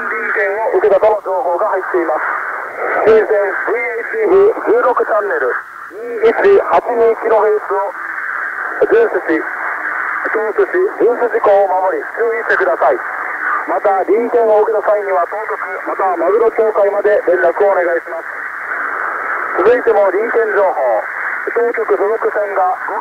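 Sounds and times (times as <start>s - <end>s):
person speaking over radio: 0.0s - 8.0s, 8.7s - 18.4s, 19.5s - 23.0s
radio hiss: 0.0s - 23.0s.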